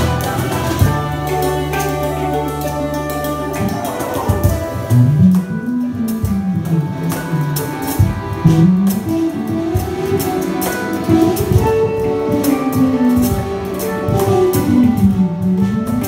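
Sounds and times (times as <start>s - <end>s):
button accordion: 0.0s - 16.0s
handpan: 0.0s - 16.0s
plucked strings: 0.0s - 16.0s.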